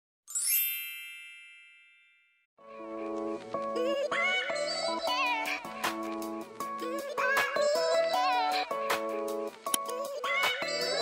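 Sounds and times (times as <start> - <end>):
bright shimmering chime: 0.3 - 2.3.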